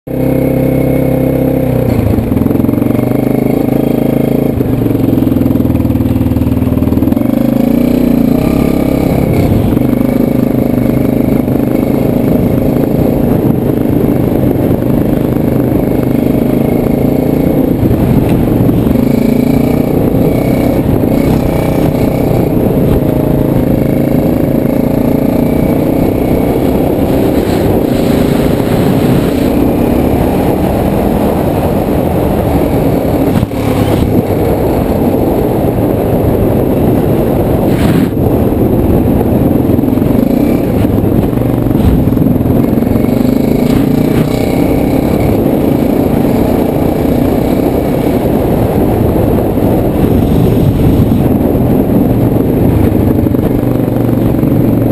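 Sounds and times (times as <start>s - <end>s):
quad bike engine revving: 0.1s - 54.9s.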